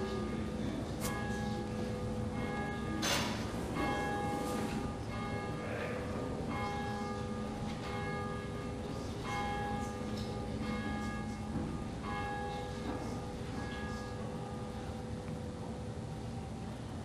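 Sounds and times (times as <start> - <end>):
church bell tolling: 0.0 - 16.1.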